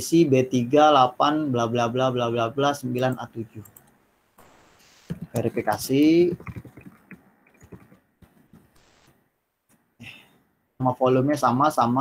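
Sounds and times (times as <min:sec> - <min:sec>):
man speaking: 0:00.0 - 0:03.7, 0:05.3 - 0:06.4, 0:10.8 - 0:12.0
keyboard or mouse clicks: 0:06.3 - 0:08.7.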